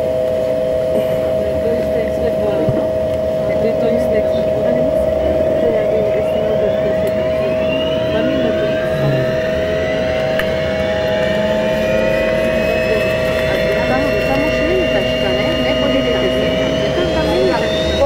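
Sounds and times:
high hum: 0.0 - 18.0
jet engine spooling up: 1.7 - 18.0.

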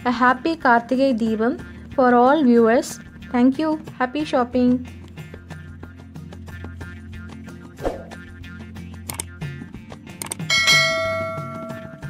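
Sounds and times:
background music: 0.0 - 12.0
bright bell chime: 10.5 - 12.0.

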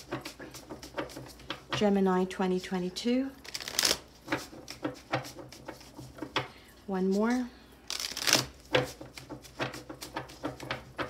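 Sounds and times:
cards being shuffled: 3.4 - 6.3, 7.9 - 10.6.

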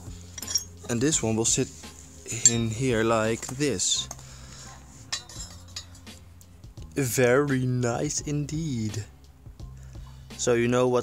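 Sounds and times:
quiet background music: 0.0 - 11.0
light metallic clinks: 0.3 - 1.0, 2.3 - 2.8, 5.1 - 6.2.

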